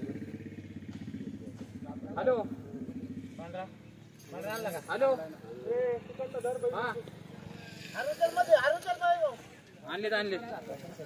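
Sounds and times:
engine idling: 0:00.0 - 0:09.7.

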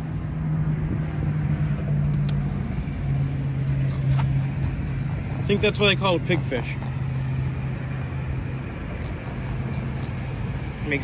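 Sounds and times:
fish grunting low drone: 0:08.6 - 0:10.6.

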